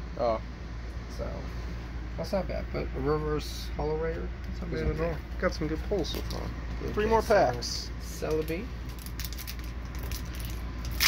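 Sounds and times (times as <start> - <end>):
foil wrapper crinkling: 8.3 - 11.0.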